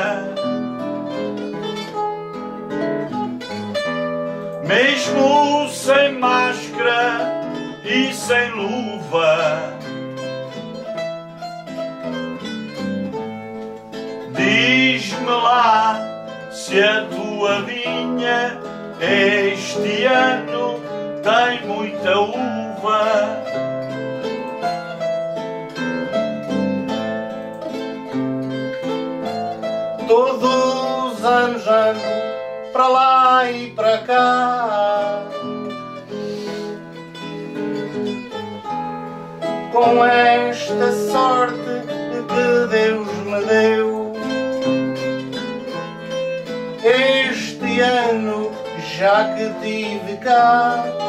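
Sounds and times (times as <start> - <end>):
acoustic guitar accompaniment: 0.0 - 51.0
plucked guitar melody: 0.0 - 51.0.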